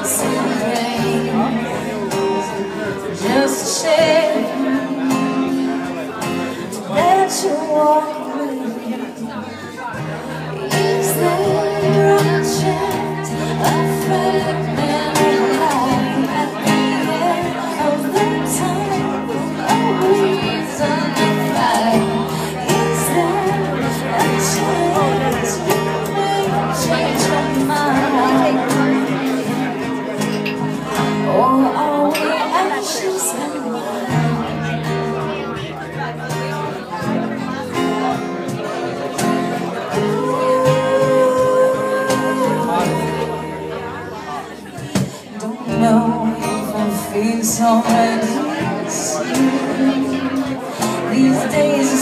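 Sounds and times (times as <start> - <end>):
woman singing: 0.0 - 30.0, 31.0 - 34.8, 39.8 - 52.0
audience chatter: 0.0 - 52.0
guitar accompaniment: 0.0 - 52.0.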